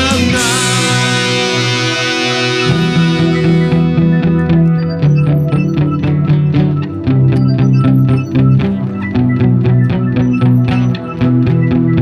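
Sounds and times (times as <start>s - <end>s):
live rock band instrumental: 0.0s - 12.0s
picked guitar notes: 0.0s - 12.0s
ringing guitar chord: 0.0s - 12.0s.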